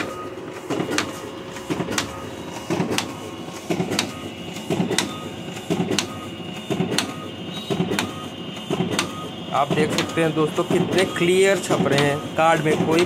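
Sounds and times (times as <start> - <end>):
printer click and paper rustle: 0.6 - 6.1.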